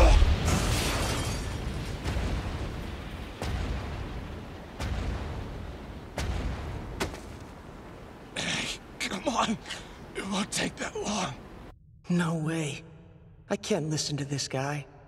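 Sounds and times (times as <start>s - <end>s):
heavy booming footsteps: 1.7s - 8.1s.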